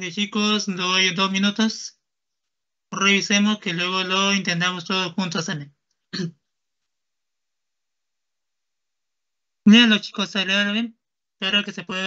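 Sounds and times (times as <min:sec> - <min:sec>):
man clearing his throat: 0:06.1 - 0:06.4.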